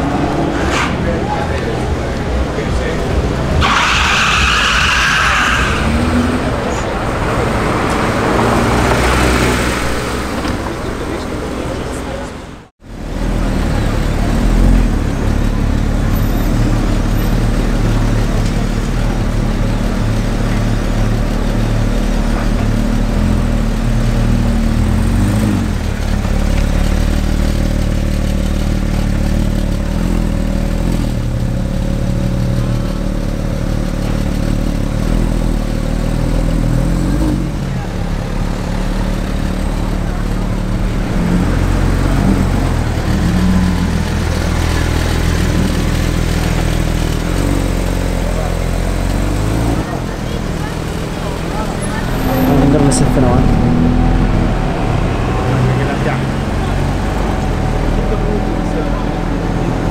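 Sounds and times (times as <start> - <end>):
car engine idling: 0.0 - 36.6, 37.5 - 59.9.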